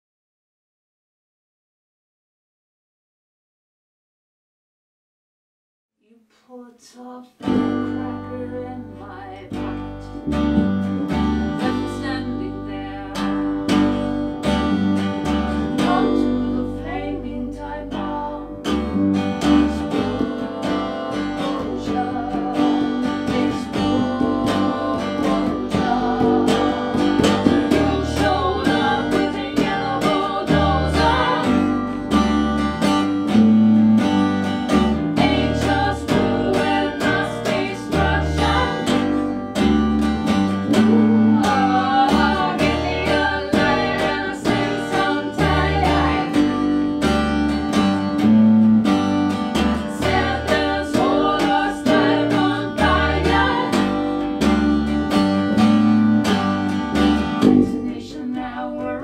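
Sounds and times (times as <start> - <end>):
person singing: 6.1 - 10.4, 11.5 - 14.1, 15.6 - 32.1, 35.1 - 39.4, 40.6 - 46.8, 49.8 - 54.1, 57.4 - 59.0
acoustic guitar strumming: 7.4 - 59.0
plucked electric bass: 7.4 - 59.0.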